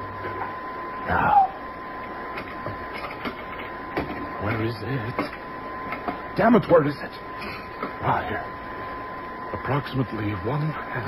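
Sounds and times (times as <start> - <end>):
machine hum with high whine: 0.0 - 11.0.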